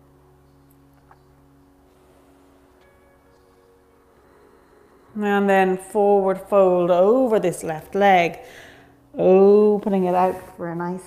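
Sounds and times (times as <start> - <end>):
soft music of sustained tones: 0.0 - 11.0.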